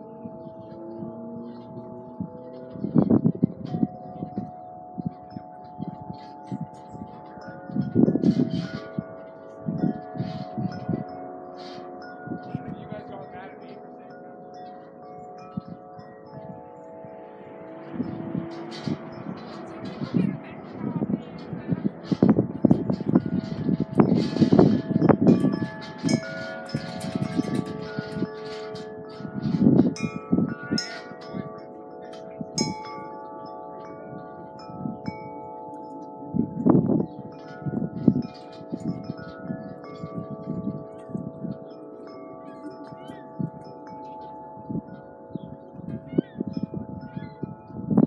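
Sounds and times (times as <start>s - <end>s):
wind chimes ringing: 0.0s - 48.0s
wind gusts on microphone: 0.0s - 48.0s.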